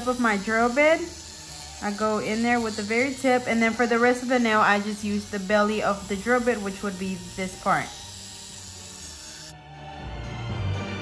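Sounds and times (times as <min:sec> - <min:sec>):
electric nail drill whirring: 0:00.0 - 0:09.8
background music: 0:00.0 - 0:11.0.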